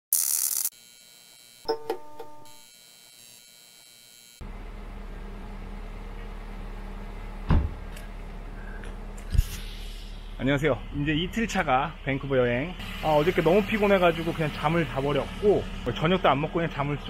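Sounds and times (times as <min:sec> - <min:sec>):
faint high buzz: 0:00.2 - 0:05.2
low background hum: 0:04.5 - 0:12.8
loud thump: 0:07.5 - 0:07.8.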